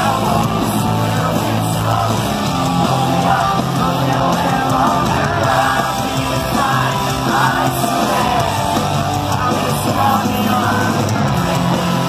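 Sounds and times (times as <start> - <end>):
live pop-punk band: 0.0 - 12.0.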